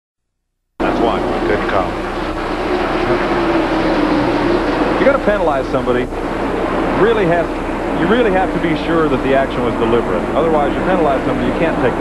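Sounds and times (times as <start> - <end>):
race car engines droning: 0.8 - 12.0.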